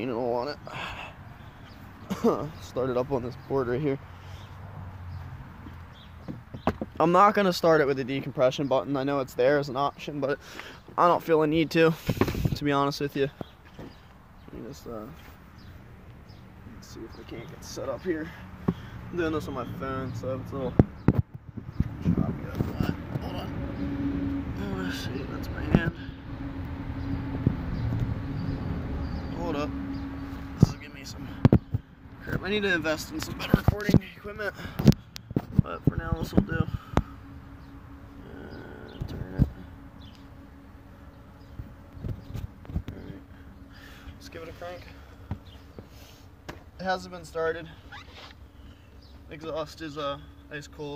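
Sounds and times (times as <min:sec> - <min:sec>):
steady low hum: 0:11.5 - 0:50.9
phone microphone handling noise: 0:12.0 - 0:12.6, 0:34.7 - 0:37.1, 0:41.4 - 0:43.2.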